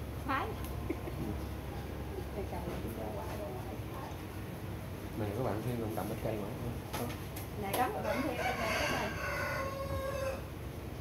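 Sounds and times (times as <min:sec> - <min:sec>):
rooster crowing: 0:08.0 - 0:10.5.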